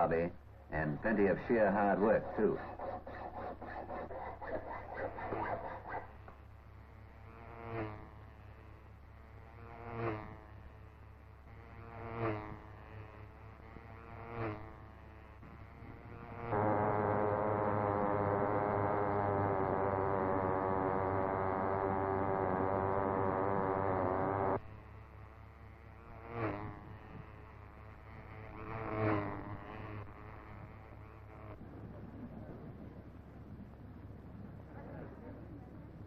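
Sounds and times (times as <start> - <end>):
loud steady buzzing engine: 15.2 - 31.5.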